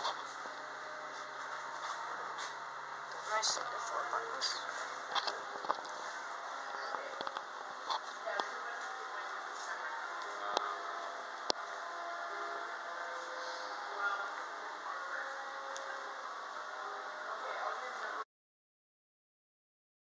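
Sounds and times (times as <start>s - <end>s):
murmur of background voices: 0.0s - 18.2s
store ambience: 0.0s - 18.2s.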